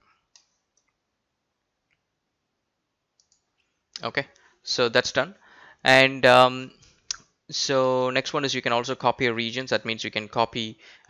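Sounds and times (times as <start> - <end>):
computer mouse clicks: 0.3 - 1.0, 3.2 - 3.7.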